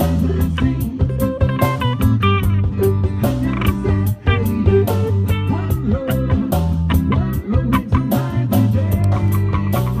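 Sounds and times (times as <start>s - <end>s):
bass line: 0.0s - 10.0s
live reggae band playing: 0.0s - 10.0s.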